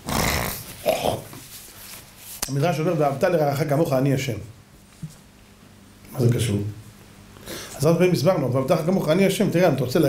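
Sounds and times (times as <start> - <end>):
man blowing his nose: 0.0 - 1.4.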